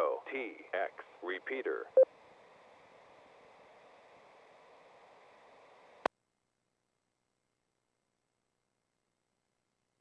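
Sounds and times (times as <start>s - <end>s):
faint radio channel hiss: 0.0s - 6.1s.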